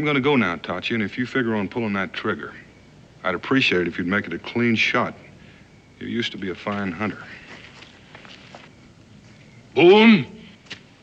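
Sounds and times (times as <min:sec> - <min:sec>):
man speaking: 0:00.0 - 0:05.4, 0:06.0 - 0:07.5, 0:09.7 - 0:10.5
soft footsteps on bare ground: 0:06.6 - 0:09.6.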